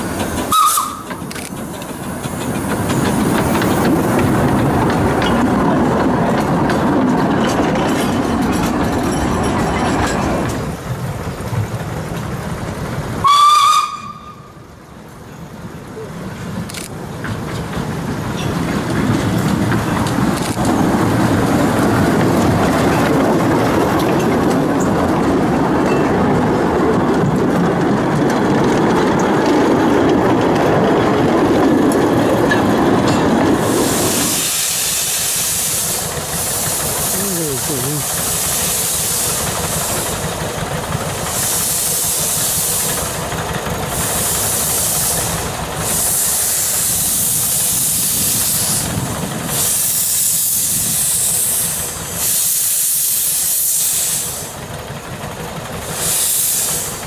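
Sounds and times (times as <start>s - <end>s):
steam train passing: 0.0s - 57.0s
steam whistle blast: 0.5s - 1.1s, 13.2s - 14.5s
steam hissing: 33.5s - 54.8s, 55.7s - 57.0s.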